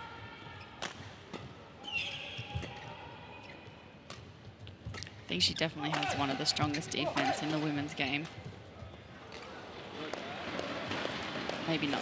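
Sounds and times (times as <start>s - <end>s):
voices: 5.3s - 8.3s.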